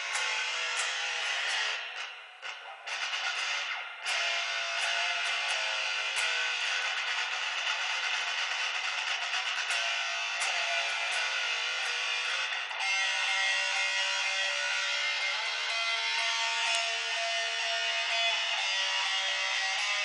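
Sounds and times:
electric guitar chords and riffs: 0:00.0 - 0:20.0.

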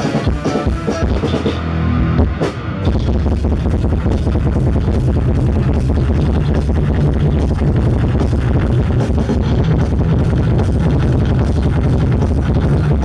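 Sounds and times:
bass guitar: 0:00.0 - 0:13.0
drum kit steady beat: 0:00.0 - 0:13.0
electric guitars: 0:00.0 - 0:13.0.

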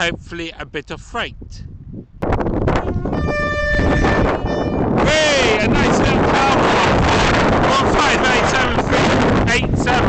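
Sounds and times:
wind noise on microphone: 0:00.0 - 0:10.0
train horn steady tone: 0:02.8 - 0:05.0.

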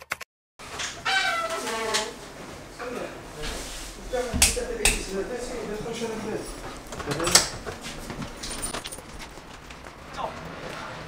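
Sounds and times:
door handle and latch rattling: 0:06.5 - 0:09.9.

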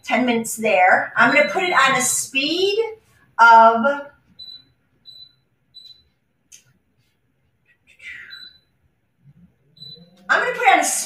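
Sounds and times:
short high electronic beeps: 0:08.2 - 0:08.7, 0:09.8 - 0:10.2.

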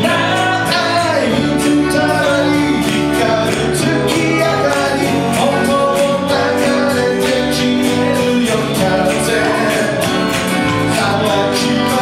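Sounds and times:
electric guitar: 0:00.0 - 0:12.0
person singing: 0:00.0 - 0:12.0
strummed acoustic guitars: 0:00.0 - 0:12.0.

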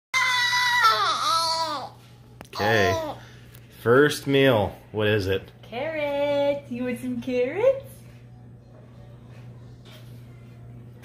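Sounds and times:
baby crying: 0:00.2 - 0:02.0, 0:02.6 - 0:03.2.

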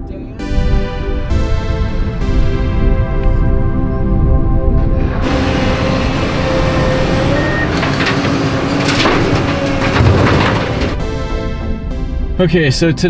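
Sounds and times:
heavy vehicle engine running: 0:03.5 - 0:12.2
dense rushing noise: 0:03.6 - 0:11.0.

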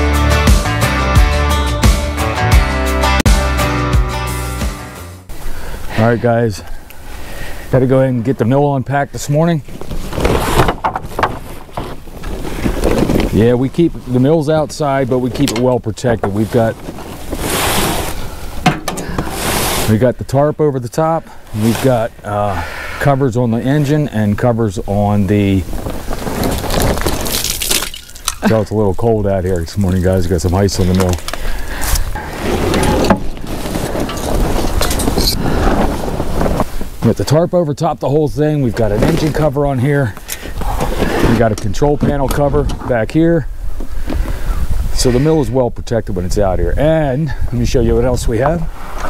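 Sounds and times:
plastic tarp rustling: 0:09.3 - 0:15.4, 0:16.0 - 0:20.0, 0:23.8 - 0:37.5, 0:38.5 - 0:43.1
wind on microphone: 0:31.7 - 0:37.0, 0:40.6 - 0:49.0.

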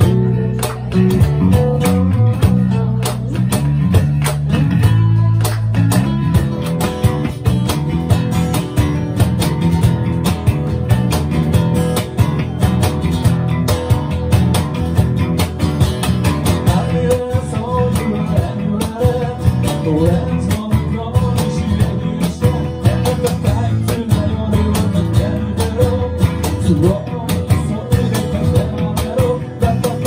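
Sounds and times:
man singing: 0:00.0 - 0:03.9, 0:16.4 - 0:30.0
acoustic band playing: 0:00.0 - 0:30.0.

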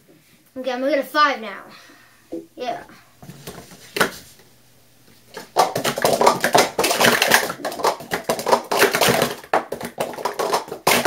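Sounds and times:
plastic cups clattering: 0:03.2 - 0:04.4, 0:05.2 - 0:11.0.

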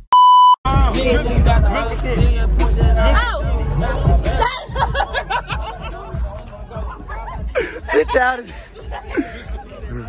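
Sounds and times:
loud electronic beep: 0:00.0 - 0:00.6
hip-hop music with heavy bass: 0:00.6 - 0:10.0.

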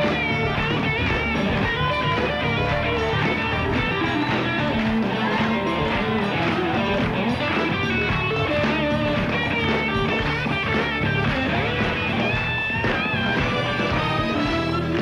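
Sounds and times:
band music with guitar: 0:00.0 - 0:15.0.

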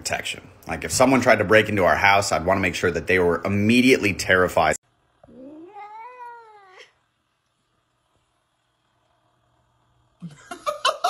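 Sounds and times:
cat meowing: 0:05.3 - 0:07.0.

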